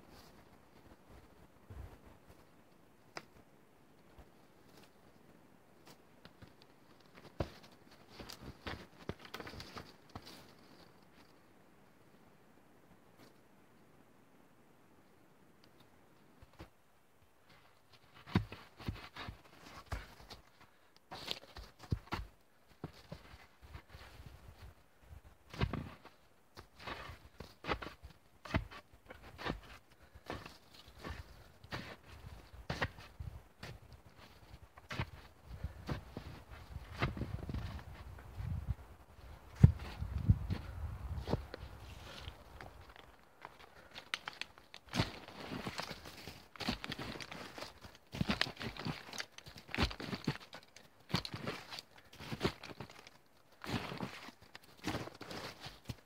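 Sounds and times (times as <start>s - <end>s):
boots tramping in snow: 25.5s - 38.6s, 39.2s - 56.0s.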